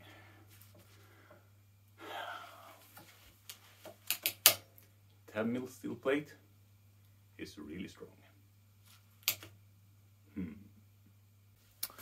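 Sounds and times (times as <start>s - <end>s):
breath out: 2.0s - 2.9s.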